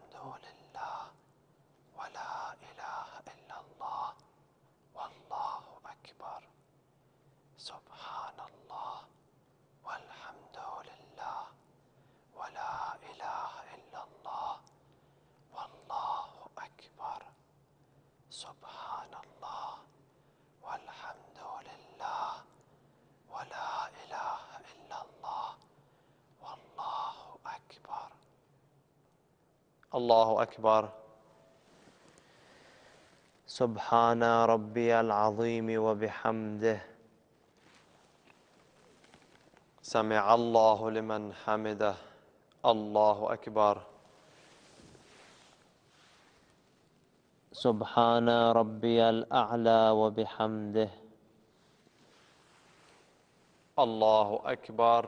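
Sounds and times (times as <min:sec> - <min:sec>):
man whispering prayers: 0:00.0 - 0:06.7, 0:07.5 - 0:28.5, 0:29.8 - 0:46.5, 0:47.5 - 0:55.0.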